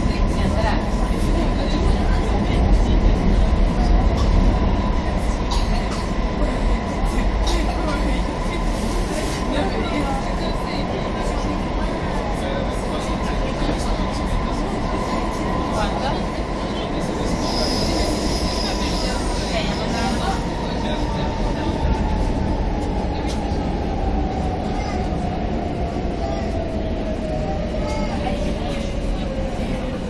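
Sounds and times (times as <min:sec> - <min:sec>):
train wheels rumbling on rails: 0:00.0 - 0:30.0.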